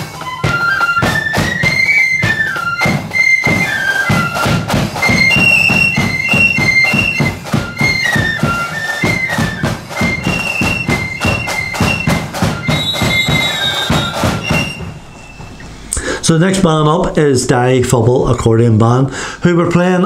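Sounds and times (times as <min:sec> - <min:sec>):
flute band melody: 0:00.0 - 0:16.0
steady drumbeat: 0:00.0 - 0:18.0.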